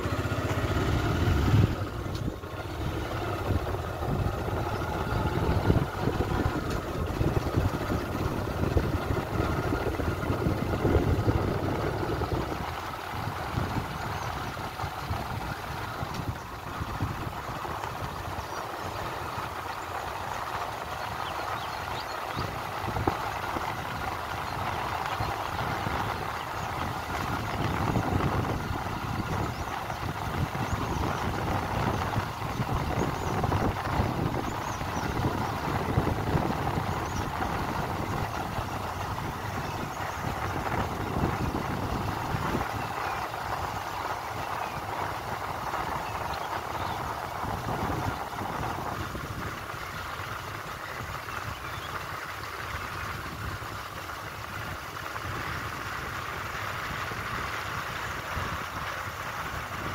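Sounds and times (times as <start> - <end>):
road noise: 0.0 - 59.9
vehicle engine running: 0.0 - 59.9
wind noise: 1.1 - 59.9.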